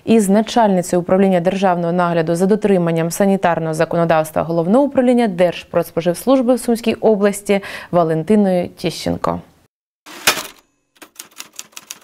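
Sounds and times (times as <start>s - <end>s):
typewriter key strikes: 10.1s - 12.0s.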